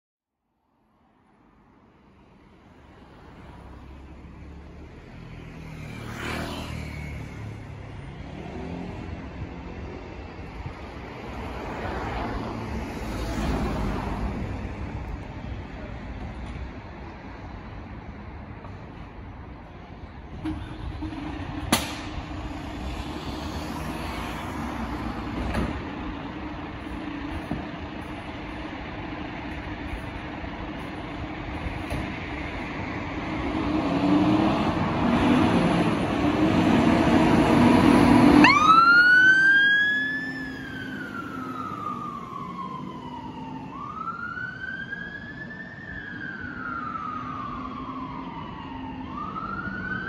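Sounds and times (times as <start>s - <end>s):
low traffic hum: 0.4s - 50.0s
car passing close by: 3.1s - 9.4s, 21.7s - 25.8s
sharp bang: 21.7s - 22.2s.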